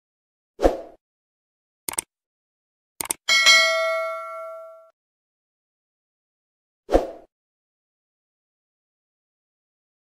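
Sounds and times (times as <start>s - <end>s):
quick clicks: 1.9s - 2.1s, 3.0s - 3.2s
bright bell ding: 3.3s - 4.9s.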